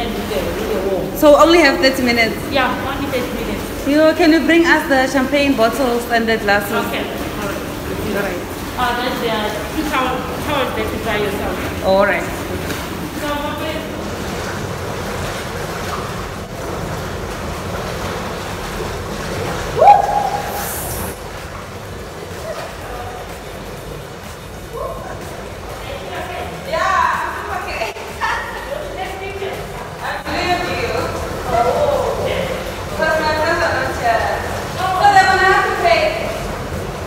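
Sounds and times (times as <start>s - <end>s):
rising cry: 19.8s - 21.2s
voices talking and calling out: 19.8s - 21.2s.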